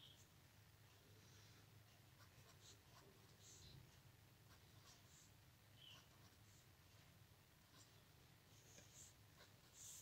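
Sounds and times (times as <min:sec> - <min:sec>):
low steady hum: 0:00.0 - 0:10.0
pen scratching on paper: 0:02.0 - 0:03.8, 0:04.4 - 0:10.0.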